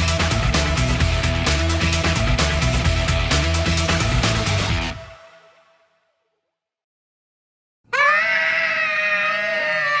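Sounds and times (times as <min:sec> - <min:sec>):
cartoon character high-pitched scream: 0:07.9 - 0:10.0.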